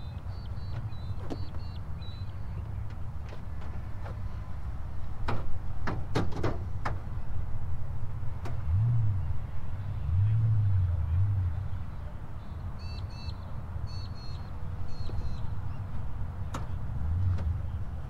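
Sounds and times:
bird chirping: 0.0 - 2.8, 12.4 - 15.9.

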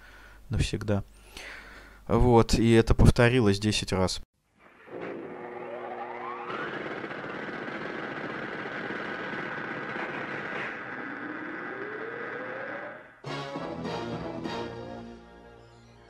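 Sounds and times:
synthesizer sound effects: 4.7 - 13.2.

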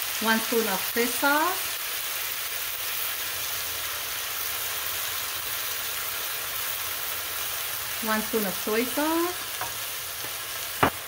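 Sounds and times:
chicken sizzling in oil: 0.0 - 11.0.

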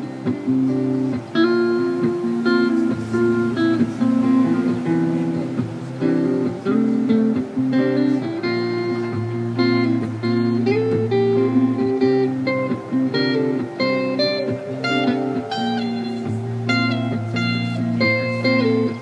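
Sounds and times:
electric guitar playing: 0.0 - 19.0.

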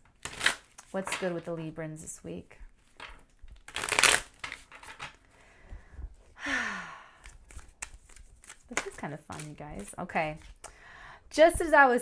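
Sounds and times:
cards shuffling: 2.9 - 5.2, 7.2 - 10.6
breathy sigh: 5.4 - 7.4.

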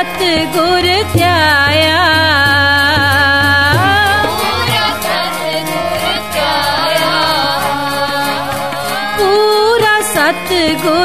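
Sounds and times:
devotional hymn singing with music: 0.0 - 11.0.

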